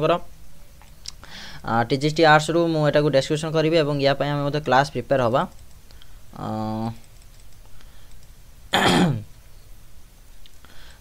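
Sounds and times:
man clearing his throat: 8.7 - 9.3.

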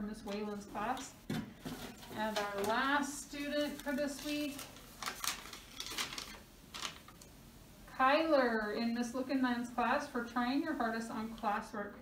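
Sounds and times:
paper crinkling: 1.6 - 7.2.

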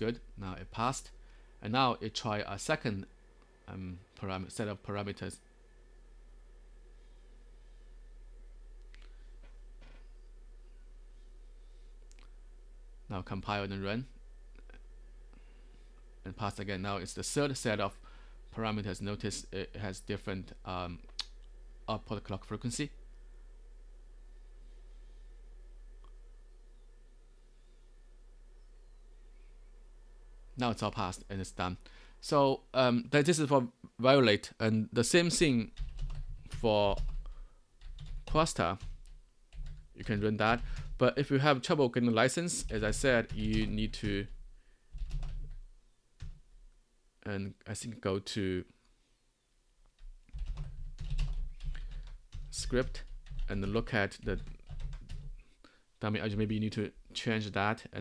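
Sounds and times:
steady low hum: 0.0 - 58.0
keyboard typing: 35.7 - 41.0, 42.6 - 45.6, 50.0 - 55.4.

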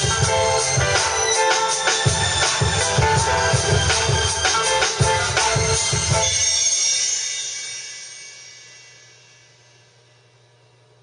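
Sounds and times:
beat through studio speakers: 0.0 - 10.6
cymbal wash ringing out: 0.0 - 10.7.

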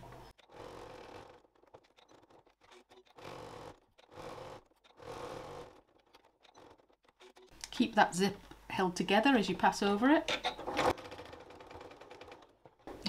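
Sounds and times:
sewing machine running: 0.0 - 7.5, 10.6 - 13.0.

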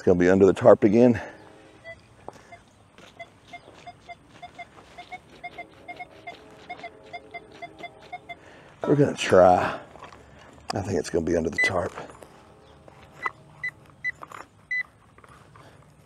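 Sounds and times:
lower detector tones: 1.4 - 9.0, 11.5 - 15.0
metal detector beeps: 1.8 - 8.5, 11.5 - 12.3, 13.0 - 14.9.

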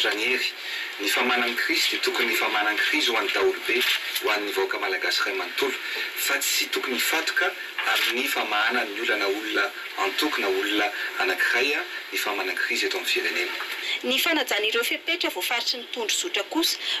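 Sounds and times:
man speaking: 0.0 - 13.8.

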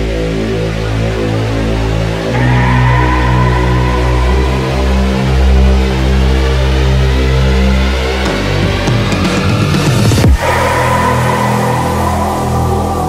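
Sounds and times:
sustained chords over deep bass: 0.0 - 13.0
high held tone: 2.3 - 7.2.

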